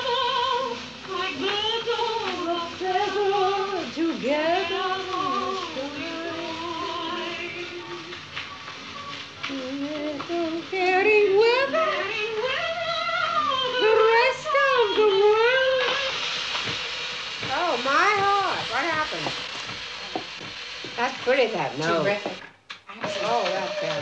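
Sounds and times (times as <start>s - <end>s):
woman singing with vibrato: 0.0s - 8.1s, 9.5s - 16.2s
record surface hiss: 0.0s - 24.0s.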